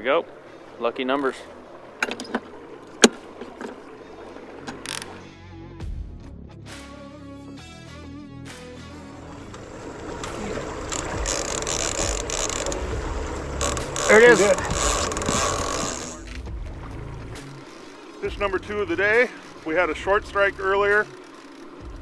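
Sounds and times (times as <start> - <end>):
fishing reel clicker ratcheting: 4.7 - 5.2, 9.6 - 16.5, 21.0 - 21.9.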